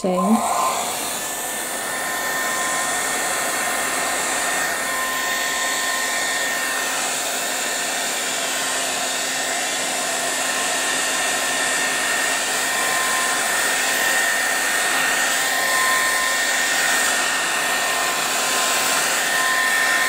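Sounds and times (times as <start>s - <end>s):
air dryer rushing and whining: 0.0s - 20.0s.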